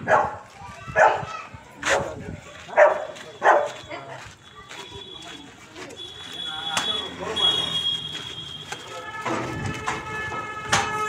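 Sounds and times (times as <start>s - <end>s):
dog barking: 0.0s - 0.4s, 1.0s - 1.3s, 1.9s - 3.8s.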